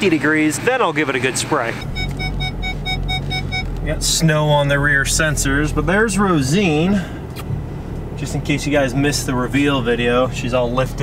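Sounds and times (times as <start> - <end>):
engine humming: 0.0 - 11.0
rapid warning chime dings: 1.8 - 3.7.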